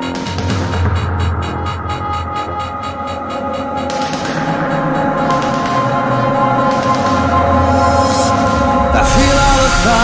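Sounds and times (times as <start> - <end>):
pulsing trance beat: 0.0 - 10.0
sustained synth chords: 0.0 - 10.0.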